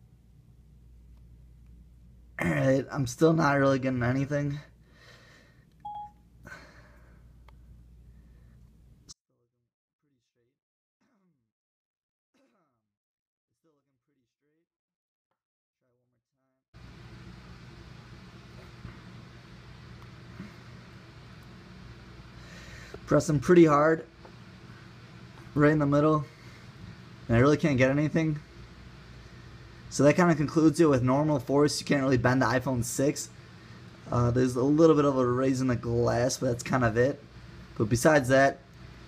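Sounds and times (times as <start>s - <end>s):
room hum and hiss: 0.0s - 9.2s, 16.8s - 39.0s
short electronic beep: 5.8s - 6.2s.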